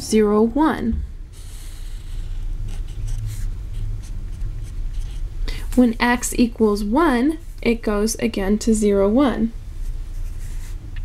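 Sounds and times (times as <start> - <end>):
steady low hum: 0.0 - 11.0
marker scratching on paper: 1.4 - 5.3.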